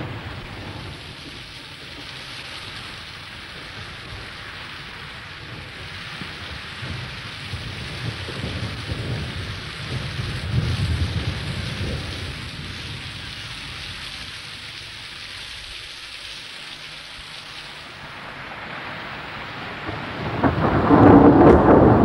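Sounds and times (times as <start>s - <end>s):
rain falling: 0.0s - 22.0s
low rumble: 17.9s - 22.0s.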